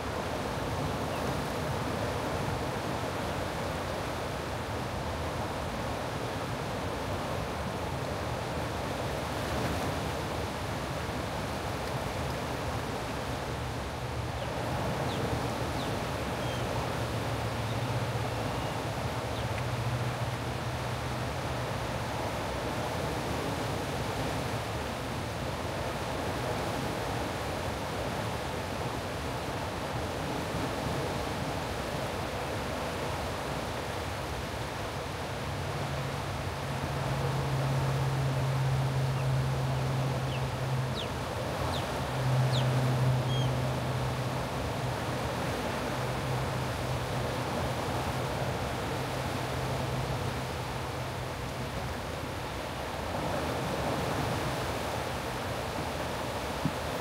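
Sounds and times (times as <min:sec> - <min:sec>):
whitewater rushing: 0:01.4 - 0:57.0.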